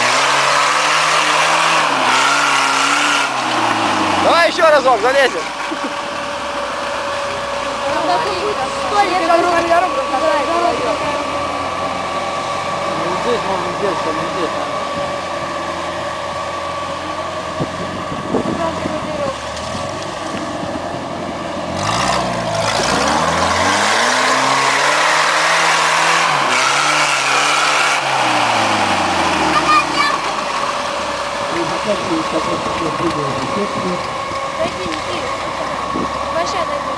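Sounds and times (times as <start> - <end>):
jeep engine revving under load: 0.0 - 36.9.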